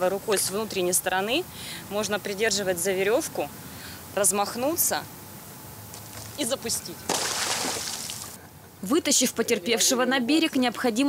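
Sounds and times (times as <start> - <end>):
lifebuoy splashing into water: 7.1 - 8.4
water sloshing: 7.1 - 8.4.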